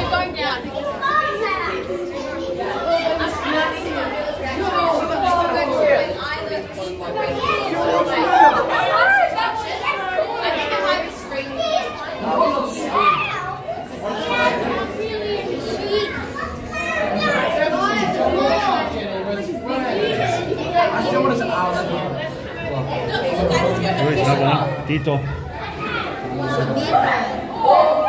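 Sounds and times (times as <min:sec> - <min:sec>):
children chattering and calling out: 0:00.0 - 0:28.0
visitors talking: 0:00.0 - 0:28.0.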